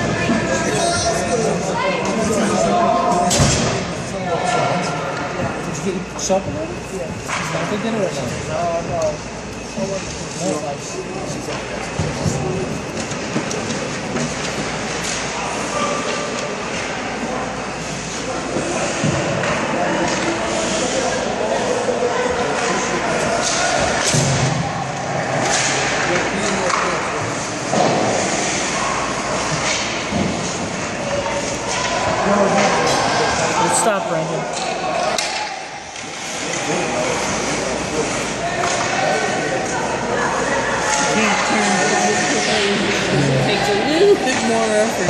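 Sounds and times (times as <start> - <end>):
indistinct echoing voices: 0.0 - 45.0
skates scraping ice: 36.0 - 39.6.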